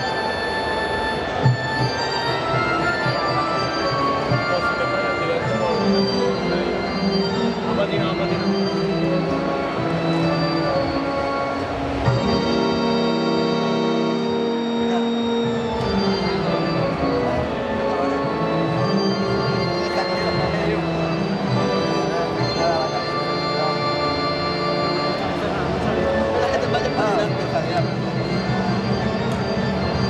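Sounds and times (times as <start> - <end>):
electronic keyboard chords: 0.0 - 30.0.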